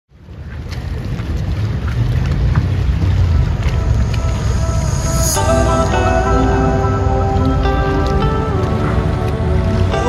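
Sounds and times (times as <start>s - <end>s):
low rumble: 0.2s - 10.0s.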